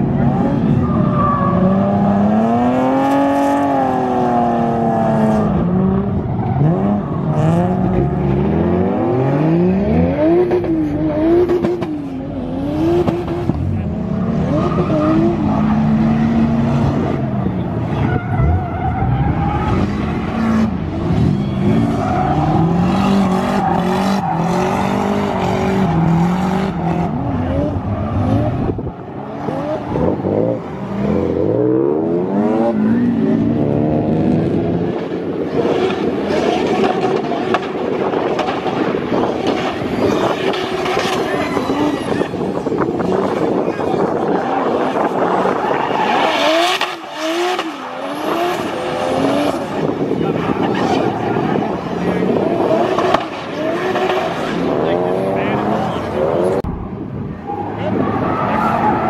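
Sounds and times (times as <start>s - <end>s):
tyres squealing on asphalt: 0.0s - 8.5s, 12.2s - 31.6s, 35.3s - 56.6s, 57.2s - 59.0s
car engine revving: 0.0s - 59.0s.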